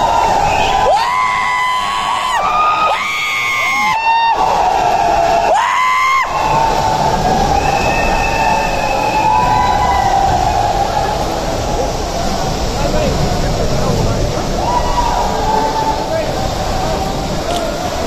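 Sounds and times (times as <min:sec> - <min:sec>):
crowd noise: 0:00.0 - 0:18.0.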